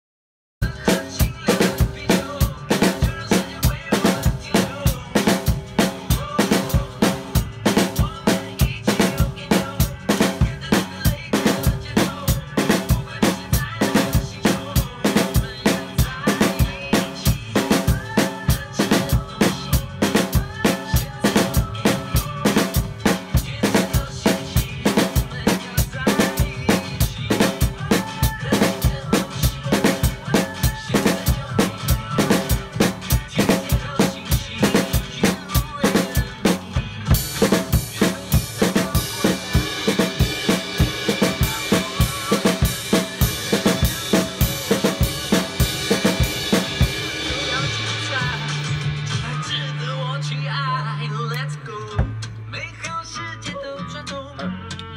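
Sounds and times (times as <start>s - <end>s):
drum kit playing fast groove: 0.6s - 50.0s
backing music: 0.6s - 54.9s.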